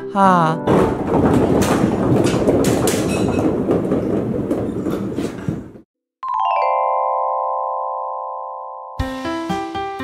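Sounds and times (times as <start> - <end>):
bouncy balls clattering on wooden floor: 0.7 - 5.8.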